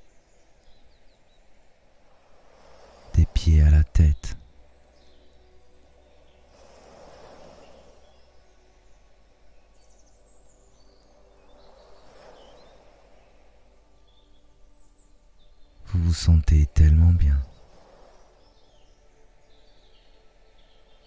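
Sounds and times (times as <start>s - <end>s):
faint birdsong chirps: 0.0s - 21.0s
sea waves washing in: 1.2s - 14.8s, 17.3s - 19.5s.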